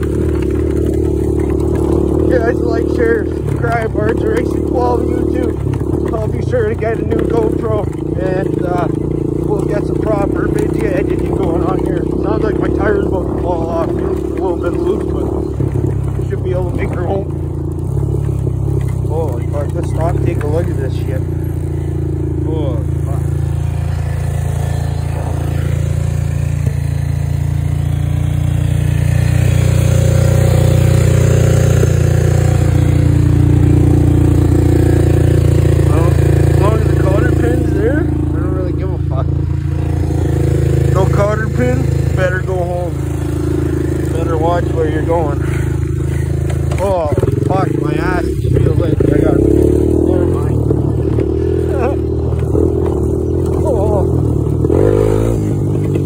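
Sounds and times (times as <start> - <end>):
four-stroke engine running: 0.0 - 56.0.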